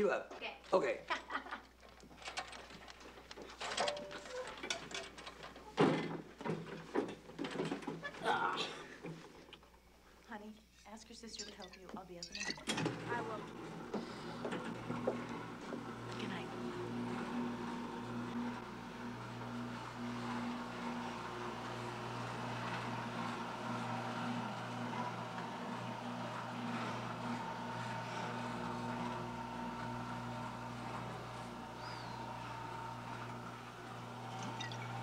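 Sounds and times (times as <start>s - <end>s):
stair-lift motor humming: 12.6s - 35.0s.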